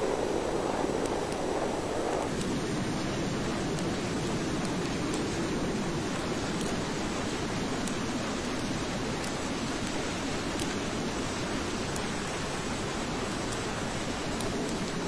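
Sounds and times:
rotor-wash wind: 0.0 - 15.0.

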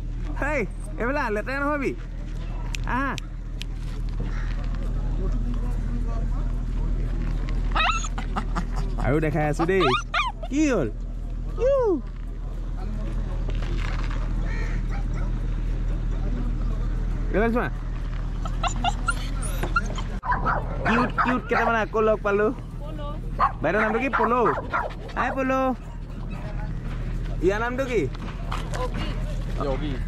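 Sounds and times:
dog whining: 7.7 - 8.4, 9.6 - 10.6, 18.4 - 20.6
dog yipping: 7.7 - 8.4, 9.6 - 10.6, 18.4 - 21.8, 23.4 - 26.5.

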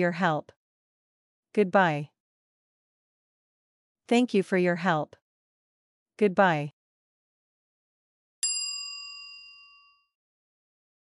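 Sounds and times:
bell-like ding: 8.4 - 10.2.

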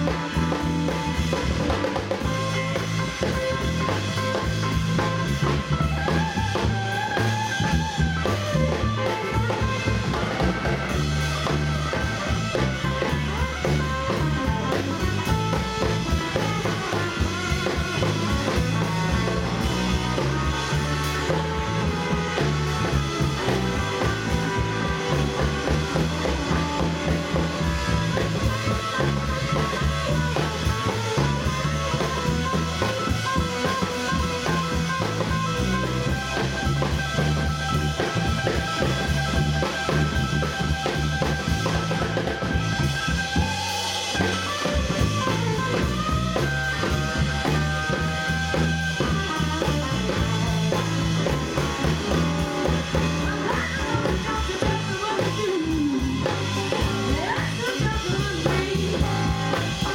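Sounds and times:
drum kit: 0.0 - 59.9
electric guitar solo: 0.0 - 59.9
upright bass: 0.0 - 59.9.

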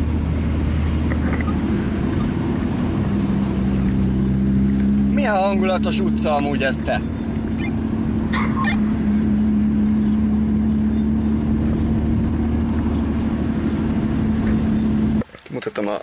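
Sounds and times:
car engine droning inside cabin: 0.0 - 15.2.

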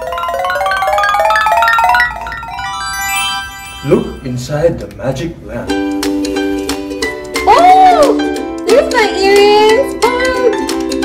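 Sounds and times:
rising bell-like notes: 0.0 - 4.7
shimmering held chord: 1.9 - 4.6.

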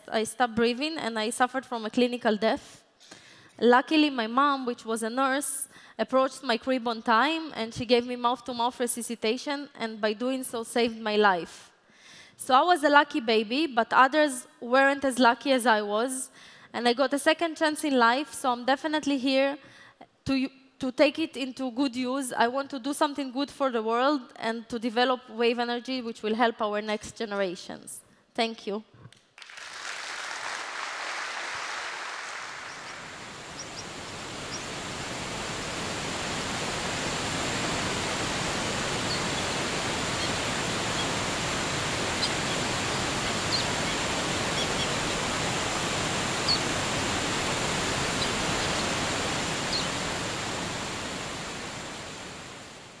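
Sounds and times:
waterfall rushing water: 31.1 - 53.0
faint high chirps: 32.3 - 35.2, 38.8 - 45.2, 49.6 - 50.1.

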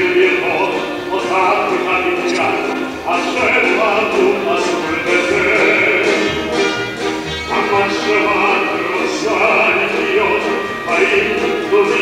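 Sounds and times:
man singing operatically: 0.0 - 12.0
mixed choir singing: 0.0 - 12.0
orchestra playing: 0.0 - 12.0.

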